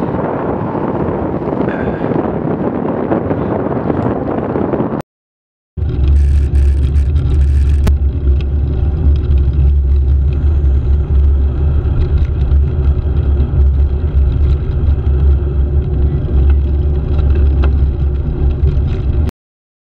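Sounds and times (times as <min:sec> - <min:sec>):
road noise: 0:00.0 - 0:05.0, 0:05.8 - 0:19.3
wind rumbling on microphone: 0:00.0 - 0:05.0, 0:05.8 - 0:19.3
passing traffic: 0:05.8 - 0:19.3.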